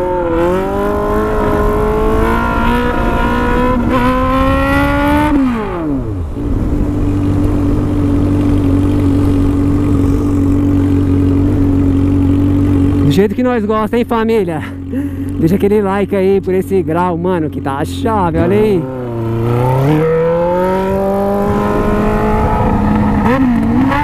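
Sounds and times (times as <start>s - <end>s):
motorcycle engine revving: 0.0s - 24.0s.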